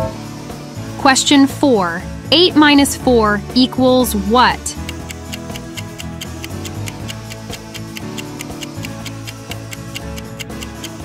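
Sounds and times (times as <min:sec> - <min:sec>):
background music: 0:00.0 - 0:11.0
clock-like ticking: 0:04.8 - 0:11.0.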